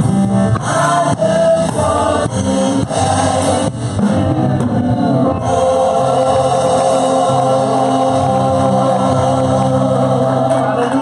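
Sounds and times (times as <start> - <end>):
drum kit: 0.0 - 11.0
keyboard: 0.0 - 11.0
women singing gospel: 0.6 - 11.0.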